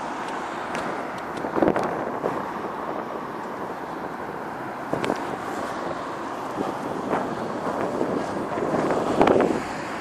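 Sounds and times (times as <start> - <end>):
city road traffic: 0.0 - 10.0.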